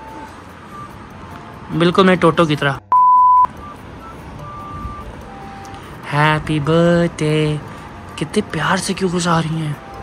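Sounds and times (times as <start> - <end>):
electronic test-tone beep: 0.0 - 1.0, 2.9 - 5.8.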